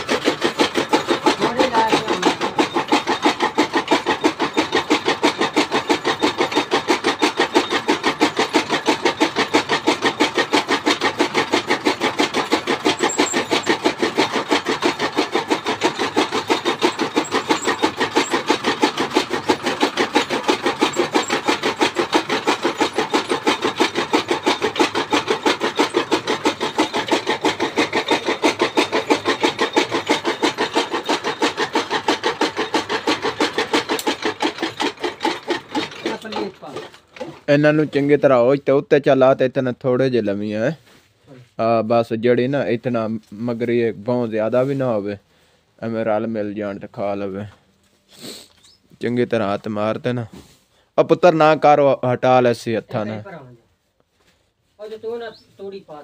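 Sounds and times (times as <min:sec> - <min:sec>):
chaff cutter chopping fodder: 0:00.0 - 0:37.6
pestle scraping in mortar: 0:00.0 - 0:38.2, 0:45.8 - 0:51.4.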